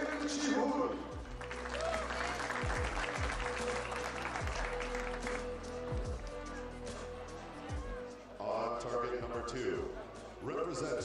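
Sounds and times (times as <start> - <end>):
spectators applauding: 1.2 - 7.0
music with bass beat: 1.2 - 8.1.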